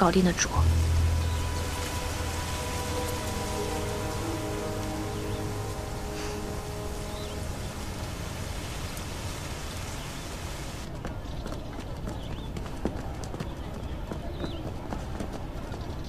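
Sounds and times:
steady background hiss: 0.0 - 10.9.

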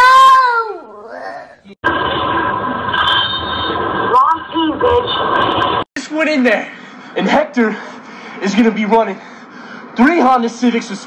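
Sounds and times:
buzzing electronic tone: 1.8 - 5.9.

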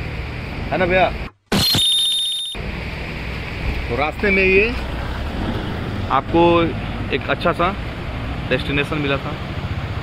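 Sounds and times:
wind and road noise: 0.0 - 10.0
shrill pulsing high tone: 1.5 - 2.6.

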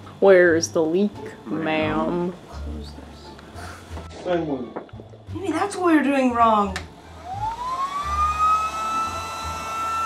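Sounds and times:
electric air pump whining: 6.9 - 10.0.

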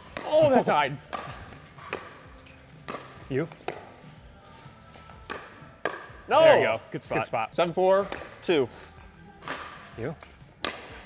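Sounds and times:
pickleball paddle pops: 1.1 - 2.1, 2.9 - 3.9, 5.3 - 6.2, 9.5 - 11.0.

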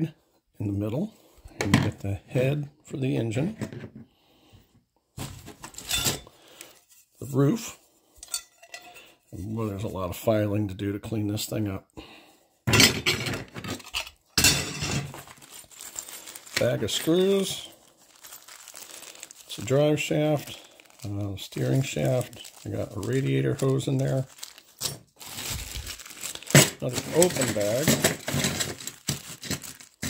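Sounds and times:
bag of metal parts clacking down: 5.2 - 6.8, 12.7 - 30.0
metal model car parts clattering: 12.7 - 15.3, 26.5 - 30.0
plastic bag crinkling: 15.1 - 30.0.

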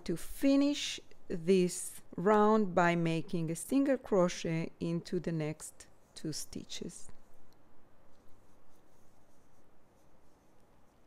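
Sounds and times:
crochet hook scraping yarn: 8.1 - 11.0.

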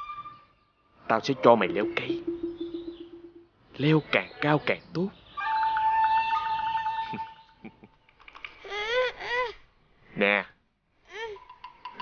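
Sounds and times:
held musical note: 1.4 - 3.7
young boy whimpering: 8.6 - 9.7, 11.1 - 11.5.

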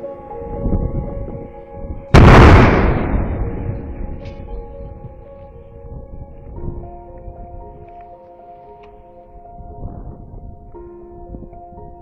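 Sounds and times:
wind rumble on microphone: 0.0 - 8.1, 9.3 - 12.0
background music with held notes: 0.0 - 12.0.

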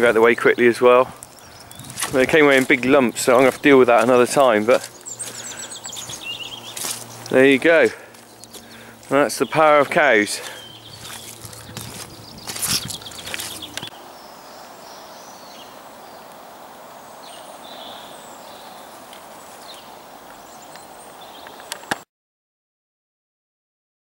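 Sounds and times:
sharp knocks and scuffs: 9.8 - 13.9
background hiss: 12.5 - 21.9.

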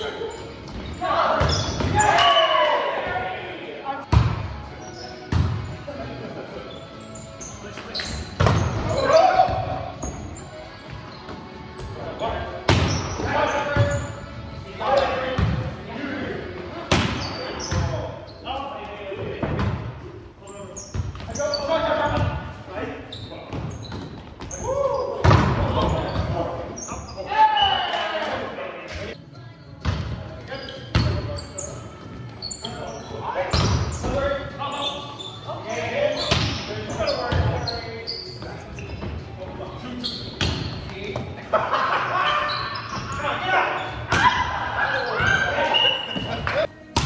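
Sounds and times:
players shouting: 0.9 - 3.7, 8.8 - 10.0
volleyball slaps: 25.2 - 25.8, 46.2 - 47.0.

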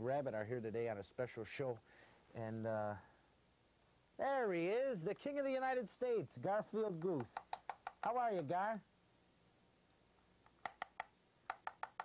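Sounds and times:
hand puppet wooden bill clacking: 6.9 - 8.6, 10.4 - 12.0.

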